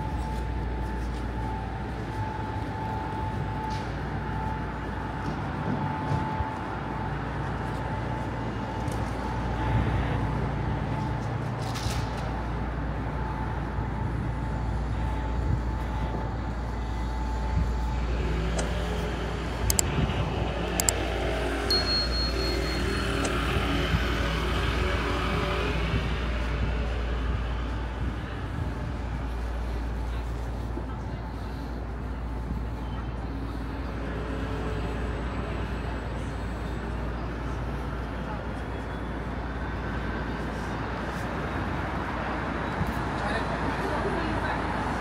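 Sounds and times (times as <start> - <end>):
low rumble of road traffic: 0.0 - 45.0
vehicle engine: 0.0 - 45.0
high electronic beeps: 21.7 - 23.4.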